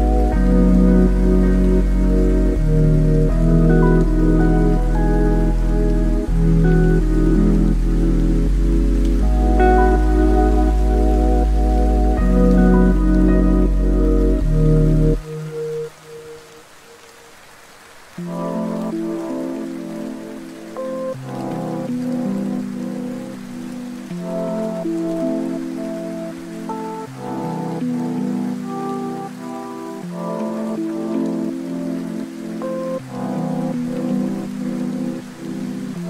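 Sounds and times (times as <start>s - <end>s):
mellow lo-fi music: 0.0s - 36.0s
steady rain falling: 0.0s - 36.0s.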